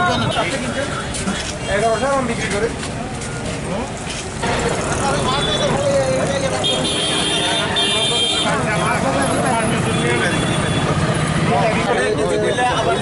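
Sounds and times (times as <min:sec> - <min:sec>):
people talking: 0:00.0 - 0:13.0
street traffic: 0:00.0 - 0:13.0
high-pitched vehicle horn: 0:06.6 - 0:08.6.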